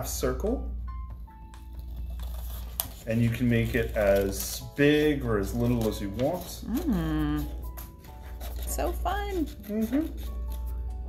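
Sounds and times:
soft background music: 0.0s - 11.0s
scissors cutting paper: 1.8s - 10.8s.

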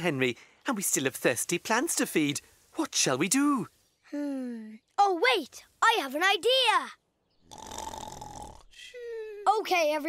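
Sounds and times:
cartoon breathy snore: 7.5s - 8.7s.

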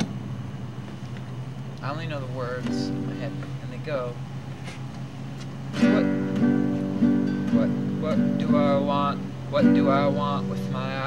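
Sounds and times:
acoustic guitar strumming: 2.5s - 11.0s.

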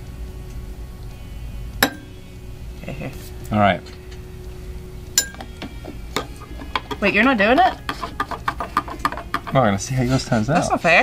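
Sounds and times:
spoon clinking on glass: 5.2s - 5.5s.

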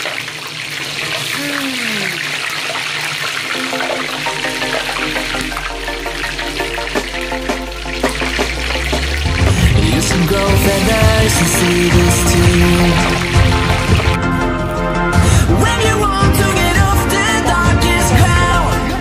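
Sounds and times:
oil sizzling: 0.0s - 19.0s
background music with bass beat: 4.2s - 19.0s.

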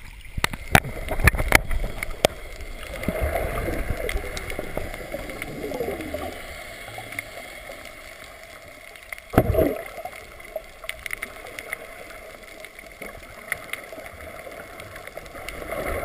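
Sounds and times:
water splashes and knocks: 0.0s - 5.6s, 9.3s - 10.2s
muffled underwater bubbling: 0.0s - 16.0s.

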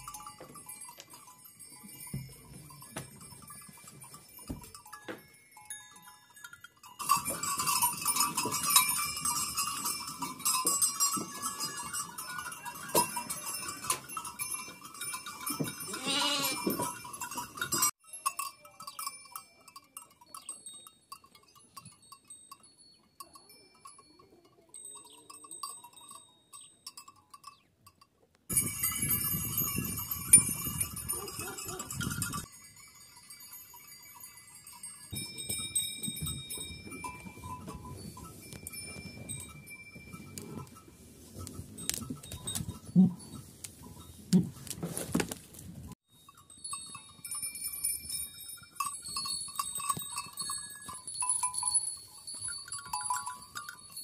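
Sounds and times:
sheep bells clinking: 0.0s - 54.0s
sheep bleating: 15.9s - 16.7s.

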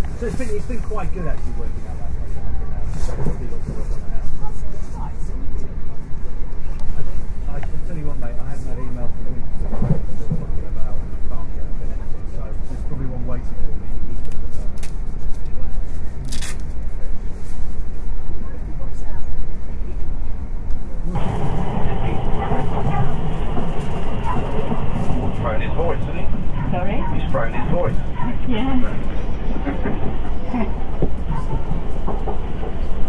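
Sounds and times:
train rumble inside carriage: 0.0s - 33.0s
people talking indistinctly: 18.4s - 33.0s.

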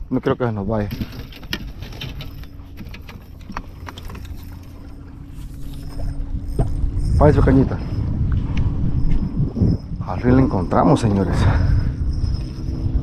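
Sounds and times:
faint steady hum: 0.0s - 13.0s
wind rumble on microphone: 0.0s - 13.0s
water lapping against boat hull: 0.8s - 7.1s.

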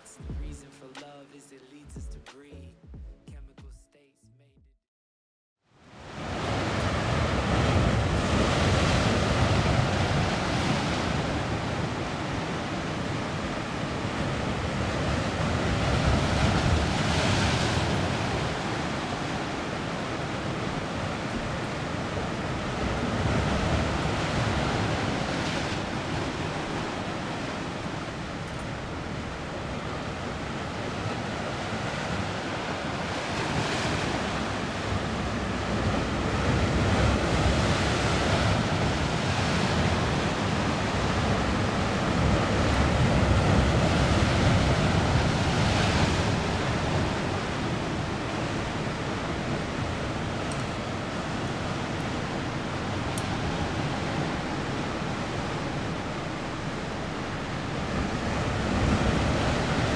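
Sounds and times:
surf breaking on rocky shore: 6.0s - 59.9s.

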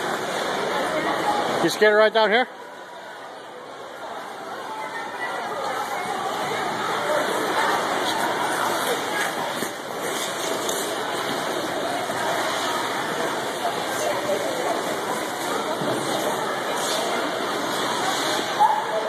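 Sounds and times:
indistinct voices of skaters: 0.0s - 1.7s, 2.5s - 19.0s
skate scrapes on ice: 7.2s - 18.7s.

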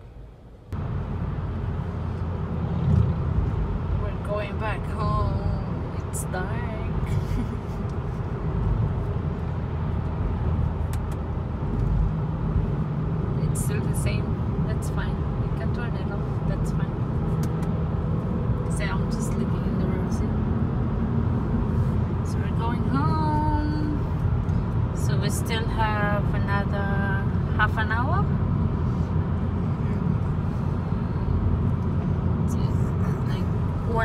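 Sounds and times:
car road and engine rumble: 0.0s - 34.0s.

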